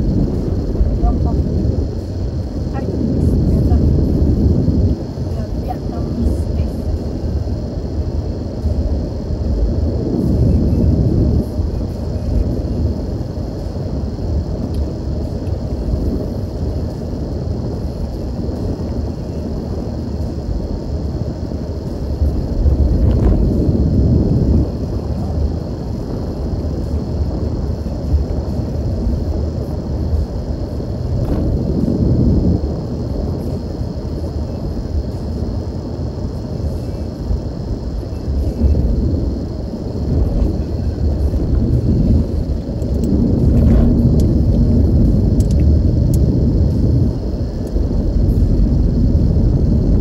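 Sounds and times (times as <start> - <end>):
car engine and tyre rumble: 0.0 - 50.0.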